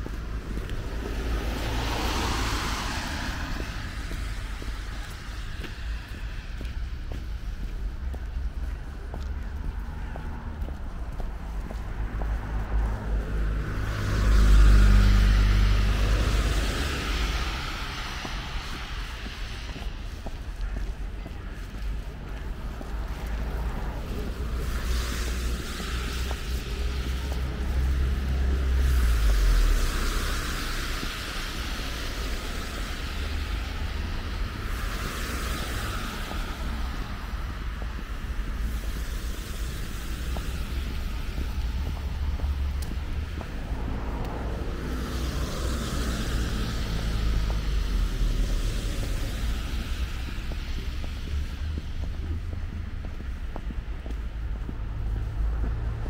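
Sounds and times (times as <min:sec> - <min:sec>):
car tyres hissing on wet road: 0:00.0 - 0:56.0
wind rumble on microphone: 0:00.0 - 0:56.0.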